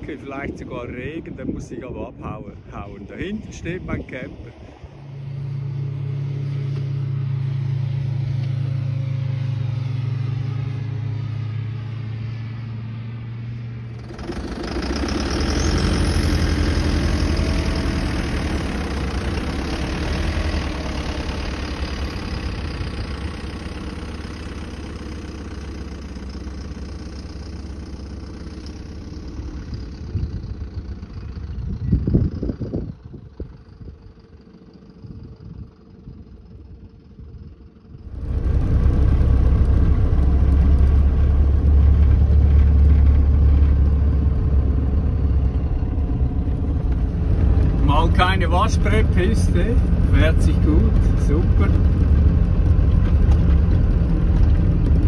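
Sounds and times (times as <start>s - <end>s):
diesel truck engine: 0.0s - 55.0s
low rumbles: 0.0s - 55.0s
truck driving on dirt track: 0.0s - 55.0s.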